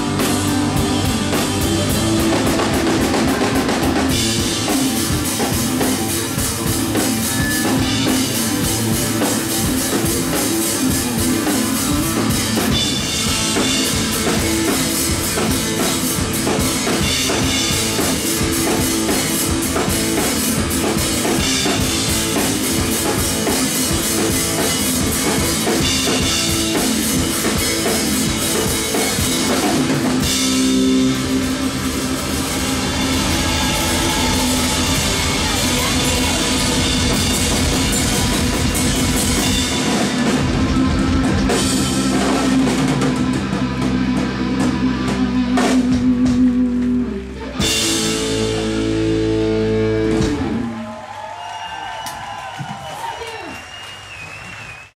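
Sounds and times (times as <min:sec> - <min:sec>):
drum kit with cymbals: 0:00.0 - 0:50.6
rock band final chord: 0:00.0 - 0:50.8
electric guitar: 0:00.0 - 0:51.0.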